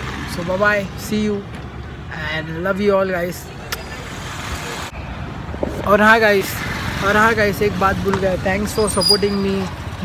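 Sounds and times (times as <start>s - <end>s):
vehicles passing: 0.0s - 10.0s.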